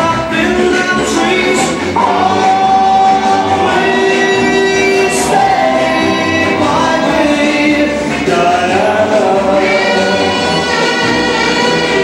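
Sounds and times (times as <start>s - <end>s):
children singing: 0.0s - 12.0s
musical accompaniment: 0.0s - 12.0s.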